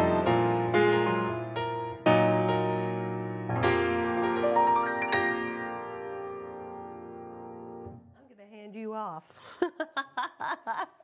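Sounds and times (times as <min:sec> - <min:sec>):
piano chord ringing: 0:00.0 - 0:08.0.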